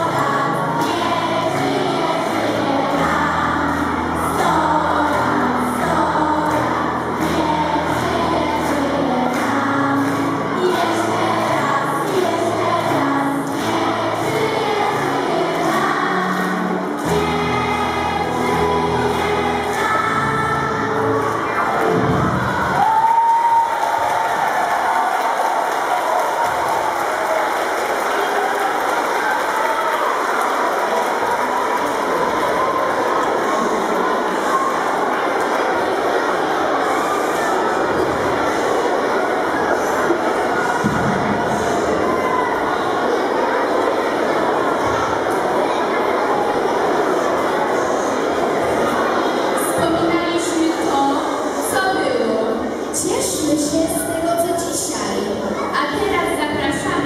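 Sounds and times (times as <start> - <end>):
children singing a folk song: 0.0 - 22.8, 32.2 - 54.1
crowd noise in a large hall: 0.0 - 57.0.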